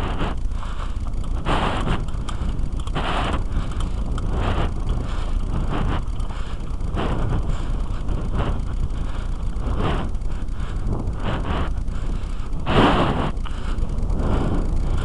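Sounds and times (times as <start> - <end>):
tyre noise on loose ground: 0.0 - 15.0
wind buffeting microphone: 1.1 - 15.0.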